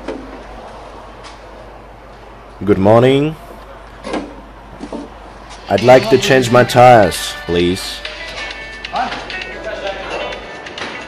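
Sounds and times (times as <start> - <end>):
workshop background noise: 0.0 - 11.0.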